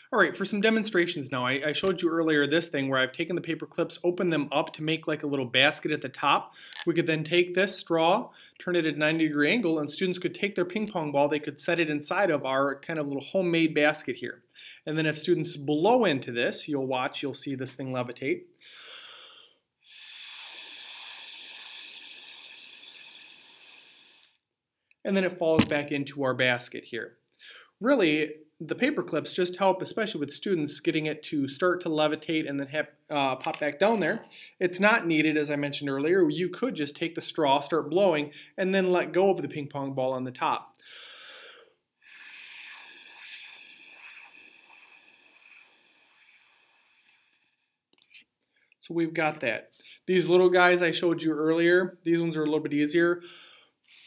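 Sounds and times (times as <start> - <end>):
short breath: 6.5 - 6.9, 8.3 - 8.6, 14.5 - 14.9, 18.6 - 24.4, 27.4 - 27.8, 34.2 - 34.6, 40.8 - 47.6, 53.2 - 54.0
air hissing through straw: 19.9 - 24.3, 42.1 - 47.5.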